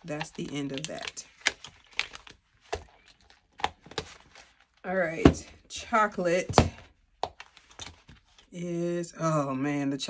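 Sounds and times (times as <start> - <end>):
paper envelopes rustling: 0.0 - 4.8.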